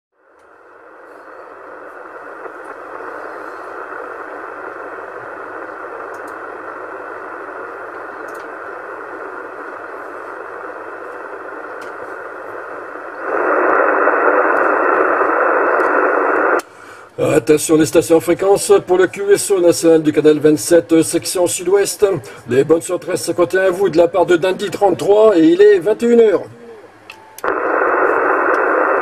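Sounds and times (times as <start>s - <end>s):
radio static hiss: 0.2s - 29.0s.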